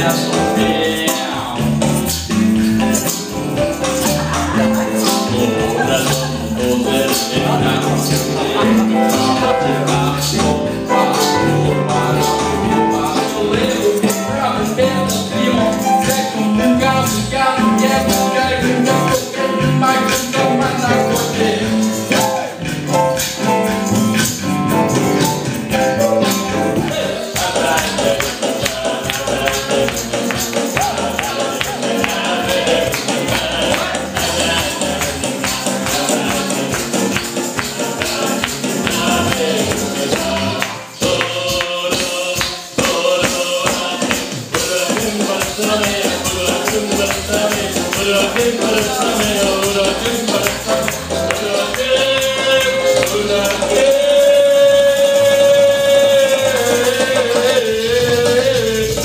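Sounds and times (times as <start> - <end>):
man singing gospel: 0.0 - 24.3, 25.5 - 59.0
backing music: 0.0 - 59.0
drum kit beat: 0.0 - 59.0
keyboard: 0.0 - 59.0.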